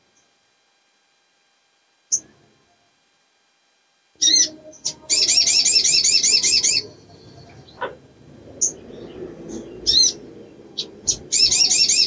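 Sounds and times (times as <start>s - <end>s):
bird chirping trill: 4.2s - 12.0s.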